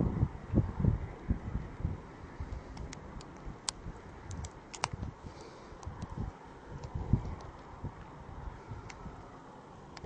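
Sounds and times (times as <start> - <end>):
wind rumbling on microphone: 0.0 - 10.0
sharp clicks: 2.8 - 5.1.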